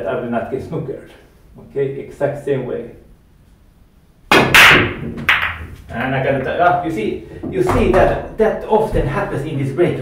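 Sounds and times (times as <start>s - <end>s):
cue ball cracking into rack: 4.3s - 5.8s
cue tip cracking cue ball: 4.3s - 5.9s
pool balls clattering: 4.5s - 9.2s.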